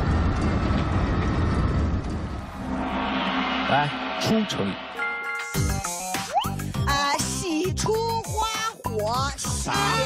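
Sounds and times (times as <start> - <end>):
loud low rumble: 0.0 - 5.0.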